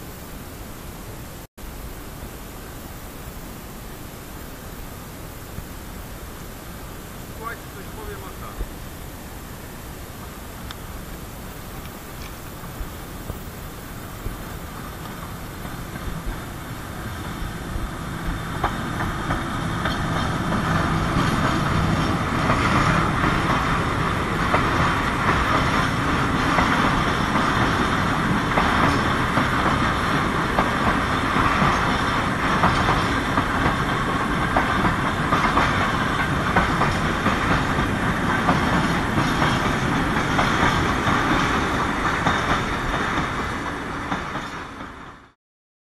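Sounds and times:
freight train rumbling past: 0.0s - 45.4s
wheels clicking over rail joints: 10.2s - 45.3s.

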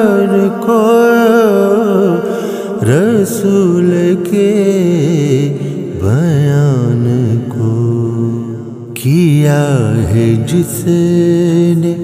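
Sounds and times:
man singing a lament: 0.0s - 12.0s.

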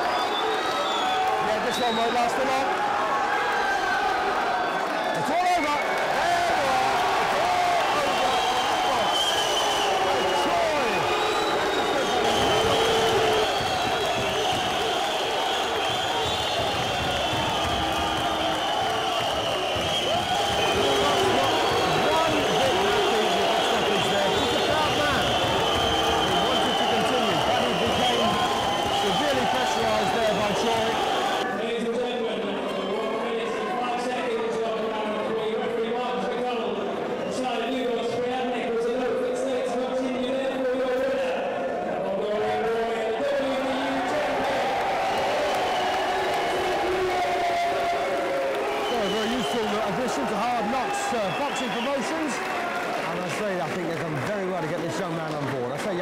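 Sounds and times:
crowd shouting and cheering: 0.0s - 56.0s.

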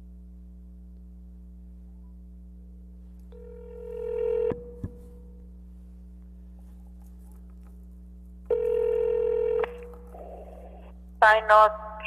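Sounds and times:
low electrical hum: 0.0s - 12.0s
telephone line beep: 3.4s - 4.8s, 8.5s - 9.8s
phone line noise rush: 8.5s - 11.4s.

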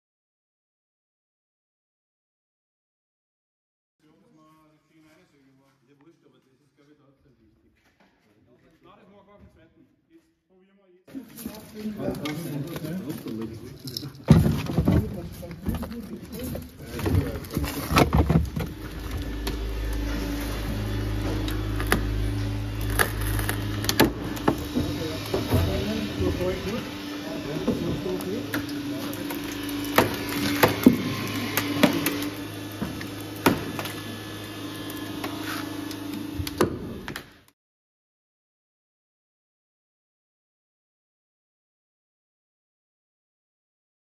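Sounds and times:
rescue equipment motor hum: 14.6s - 37.4s.

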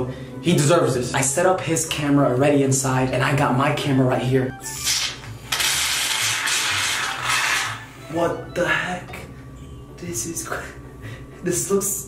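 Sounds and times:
aerosol can spraying foam: 5.6s - 7.8s.

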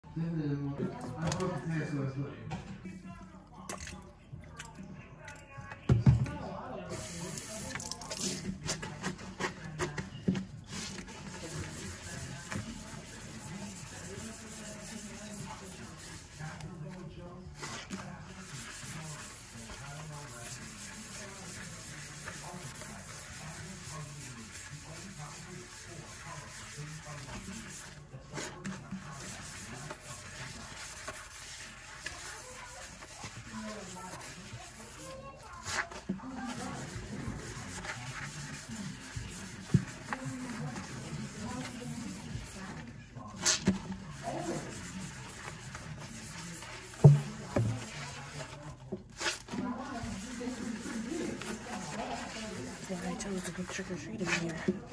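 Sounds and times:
sponge scrubbing a steel sink: 6.9s - 54.9s.

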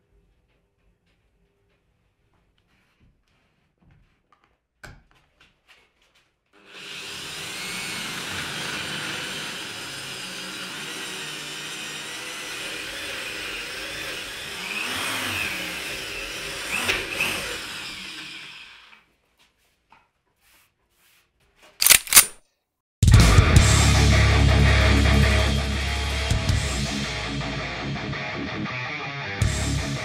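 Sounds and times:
power drill boring into wood: 6.6s - 19.0s.

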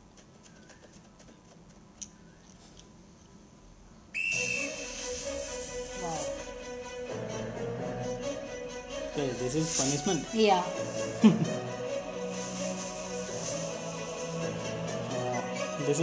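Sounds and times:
sports whistle blast: 4.2s - 5.2s
film music with long held note: 4.2s - 16.0s.

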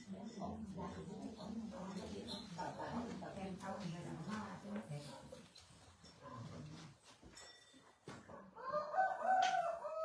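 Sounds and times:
faint voices murmuring: 0.0s - 7.2s
rooster crowing: 8.6s - 10.0s.

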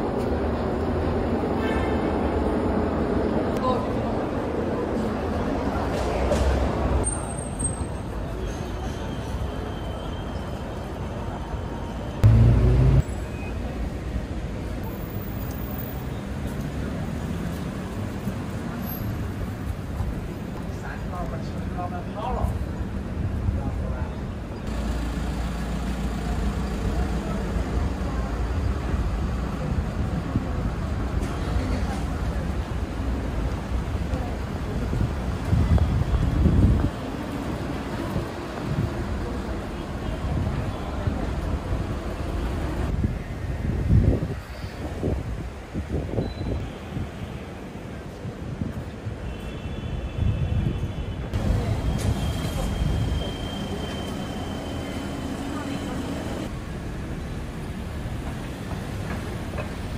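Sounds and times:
faint voices of passers-by: 0.0s - 59.9s
traffic noise: 0.0s - 59.9s
low rumble of passing vehicles: 12.2s - 16.0s
wind buffeting microphone: 34.8s - 37.2s, 42.9s - 47.2s.

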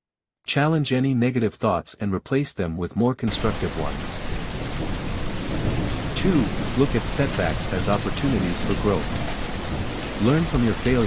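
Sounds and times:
low thunder rumble: 3.3s - 11.0s
steady rain falling: 3.3s - 11.0s.

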